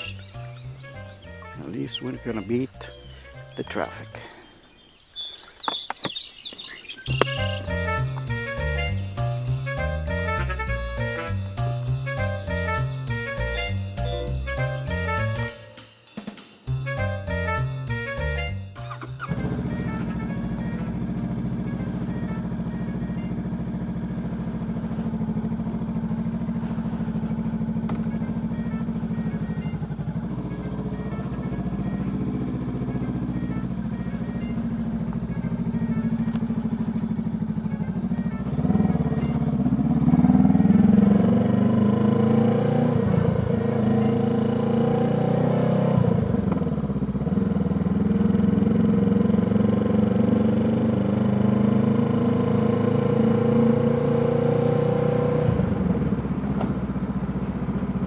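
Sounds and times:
motorcycle engine: 0:00.0 - 0:15.7, 0:16.7 - 0:58.0.

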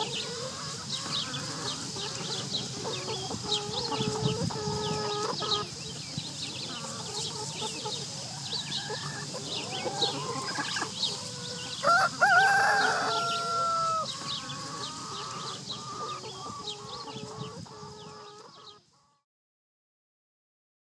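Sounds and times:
chickens clucking: 0:00.0 - 0:19.2
rooster crowing: 0:11.5 - 0:14.1.

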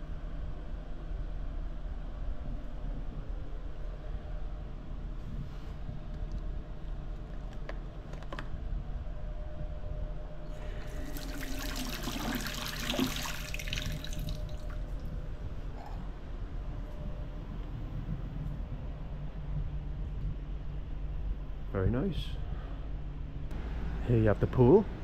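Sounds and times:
tap water running into sink: 0:10.8 - 0:14.8.

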